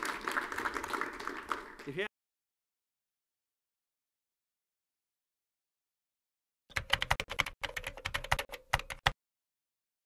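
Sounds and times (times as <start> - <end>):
computer keyboard typing: 6.7 - 9.2.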